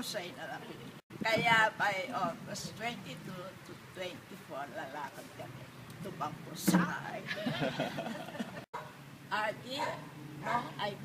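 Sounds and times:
elderly woman talking: 0.0 - 7.3.

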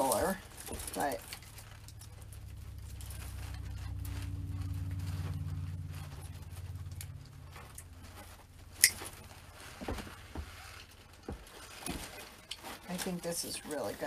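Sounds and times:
low steady hum: 0.0 - 14.0
pine branches rustling: 0.0 - 14.0.

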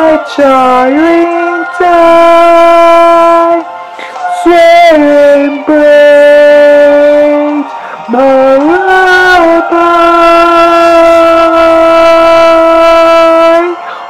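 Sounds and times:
man singing held notes: 0.0 - 3.6, 4.3 - 13.9.

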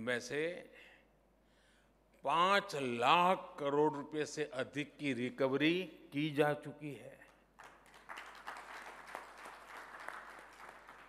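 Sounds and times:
audience applauding: 7.6 - 11.0.

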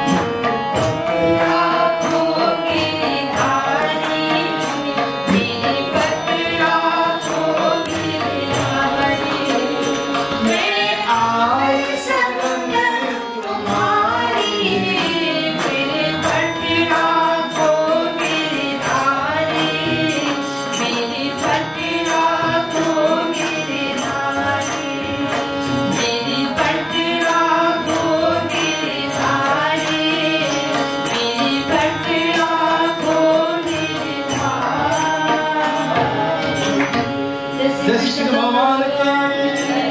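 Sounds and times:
harmonium held tones: 0.0 - 39.9
tabla: 0.0 - 39.9
woman singing into a microphone: 0.0 - 39.9.

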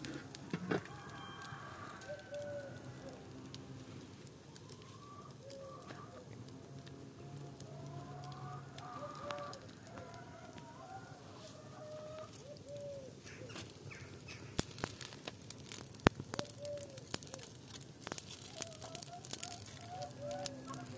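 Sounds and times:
wood fire crackling: 0.0 - 20.9
chickens clucking: 4.7 - 6.4, 7.2 - 14.6, 18.5 - 20.9.

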